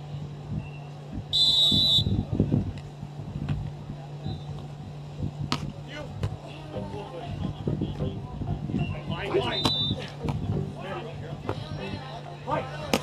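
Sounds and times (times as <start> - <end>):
steady low hum: 0.0 - 13.0
referee's whistle blast: 1.3 - 2.2, 9.4 - 10.0.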